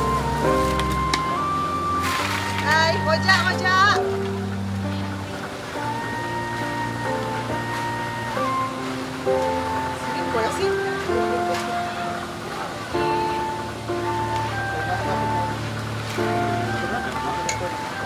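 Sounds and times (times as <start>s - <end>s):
music with held notes and bass: 0.0s - 18.0s
wavering bending melody: 0.0s - 18.0s.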